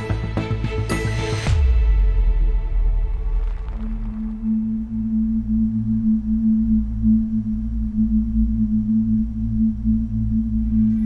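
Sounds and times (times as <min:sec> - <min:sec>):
deep hum: 0:01.8 - 0:11.0
low drone note: 0:03.4 - 0:11.0.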